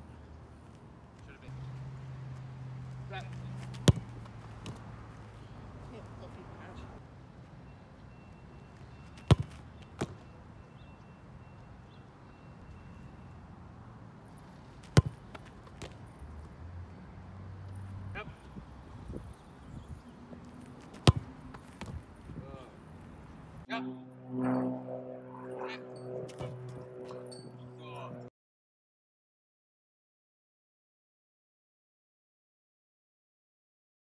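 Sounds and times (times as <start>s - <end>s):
soccer ball kicked hard: 3.6s - 4.8s, 9.2s - 10.2s, 14.9s - 15.2s, 20.9s - 22.0s.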